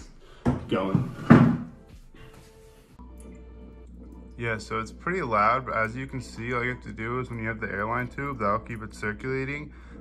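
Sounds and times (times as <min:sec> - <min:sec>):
aquarium air pump humming: 0:01.8 - 0:10.0.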